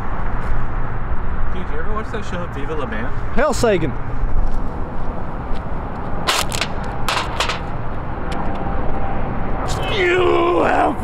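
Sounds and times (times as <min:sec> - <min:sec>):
sharp bangs: 0:06.2 - 0:07.9.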